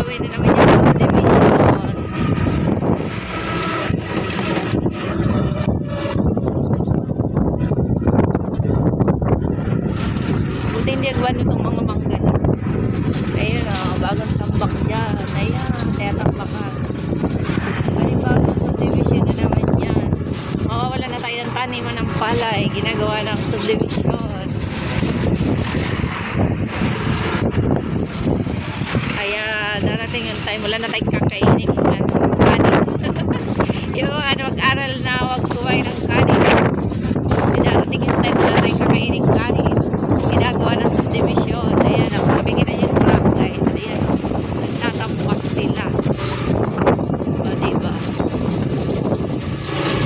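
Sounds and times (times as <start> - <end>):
road and vehicle noise: 0.0 - 50.0
wind buffeting microphone: 0.0 - 50.0.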